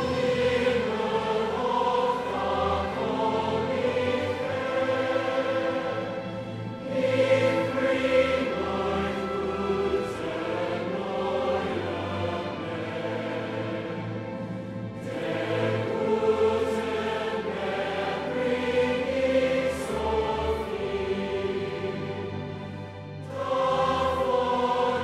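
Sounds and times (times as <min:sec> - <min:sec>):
large choir singing: 0:00.0 - 0:25.0
orchestral strings and harps: 0:00.0 - 0:25.0.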